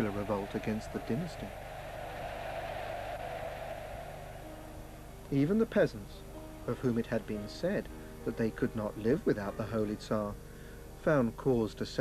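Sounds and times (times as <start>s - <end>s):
steady hiss: 0.0s - 12.0s
faint held musical notes: 3.5s - 12.0s.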